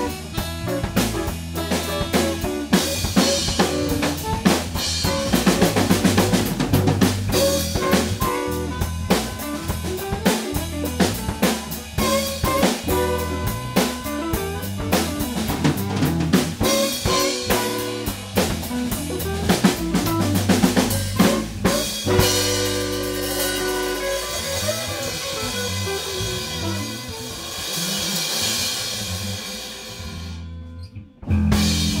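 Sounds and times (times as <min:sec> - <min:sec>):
busy drum hits: 0:00.0 - 0:27.1
live band playing: 0:00.0 - 0:30.3, 0:31.4 - 0:32.0.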